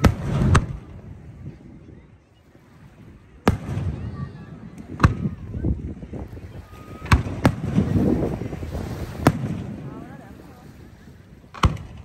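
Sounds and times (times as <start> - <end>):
low rumbling echo: 2.8 - 12.0.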